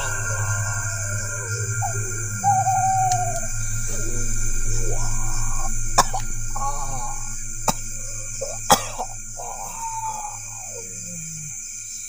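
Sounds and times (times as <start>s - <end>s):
droning music: 0.0s - 12.0s
man coughing and clearing throat: 6.0s - 9.2s.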